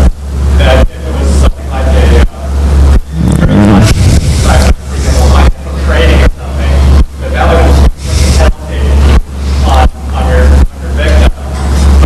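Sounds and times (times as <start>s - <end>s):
loud pulsing low hum: 0.0s - 12.0s.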